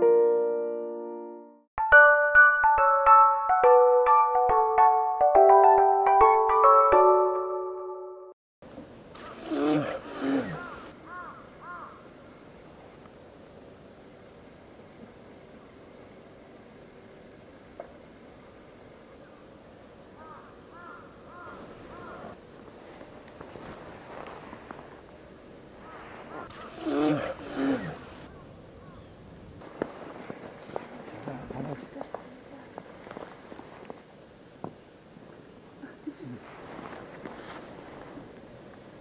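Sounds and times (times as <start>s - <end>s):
faint outdoor ambience: 8.6s - 39.0s
crow cawing: 10.6s - 12.1s, 20.2s - 22.4s.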